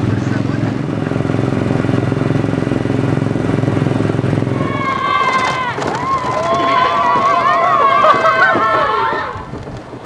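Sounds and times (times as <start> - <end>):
ride rumbling: 0.0 - 10.0
riders screaming: 4.2 - 9.7.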